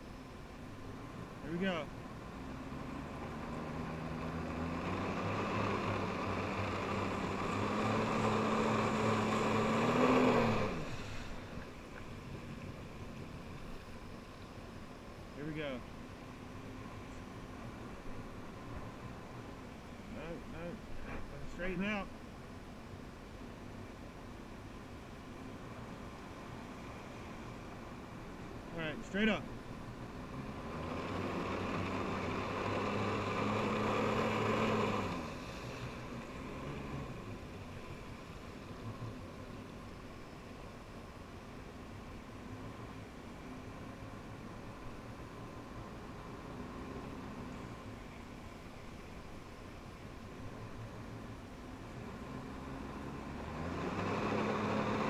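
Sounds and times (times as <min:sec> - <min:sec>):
watercraft engine revving: 0:02.4 - 0:11.6, 0:30.1 - 0:37.5, 0:52.1 - 0:55.0.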